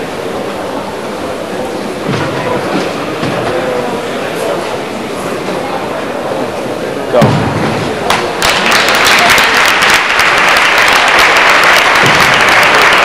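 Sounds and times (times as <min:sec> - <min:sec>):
murmur of large crowd: 0:00.0 - 0:13.0.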